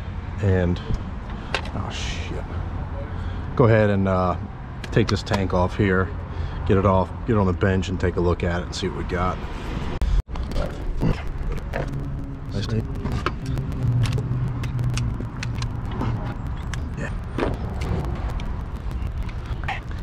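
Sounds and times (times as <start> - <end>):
steady low hum: 9.9 - 20.0.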